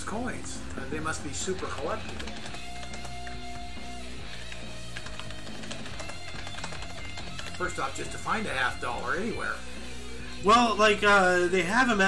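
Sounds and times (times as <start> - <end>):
background music: 0.0 - 12.0
computer keyboard key clicks: 2.1 - 3.4.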